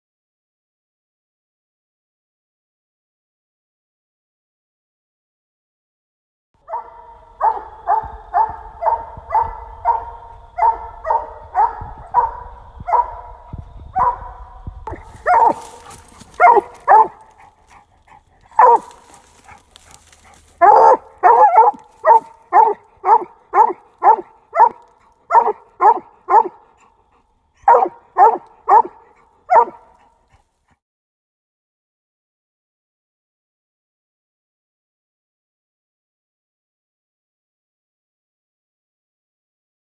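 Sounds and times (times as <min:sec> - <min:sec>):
dog barking: 0:06.6 - 0:30.3.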